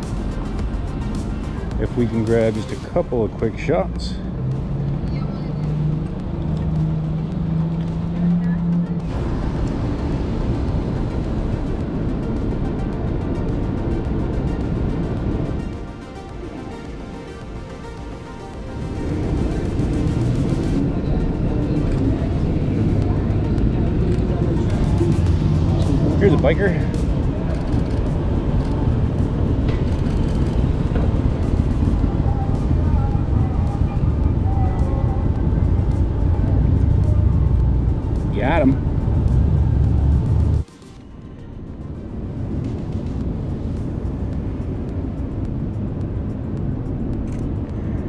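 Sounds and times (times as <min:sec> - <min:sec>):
background music: 0:00.0 - 0:48.0
motorcycle engine rumbling: 0:18.2 - 0:40.7.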